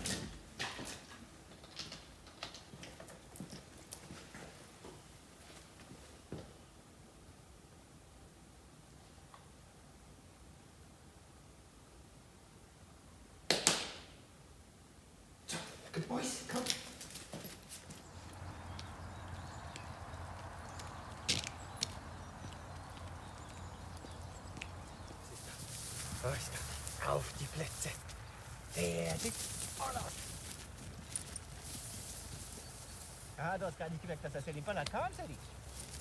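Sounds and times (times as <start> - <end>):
dog paws thudding on grass: 16.5 - 36.0.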